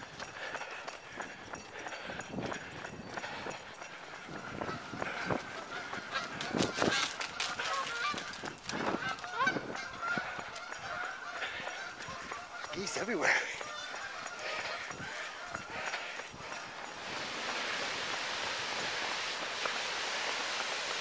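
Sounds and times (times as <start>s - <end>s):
running footsteps on road: 0.0s - 21.0s
geese honking: 4.4s - 21.0s.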